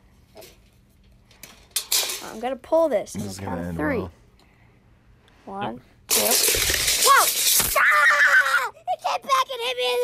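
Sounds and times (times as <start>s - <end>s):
tape measure scraping clatter: 6.1s - 7.8s.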